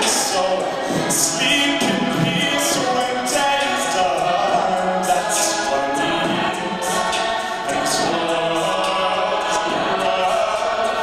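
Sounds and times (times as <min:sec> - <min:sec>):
a cappella ensemble singing: 0:00.0 - 0:11.0.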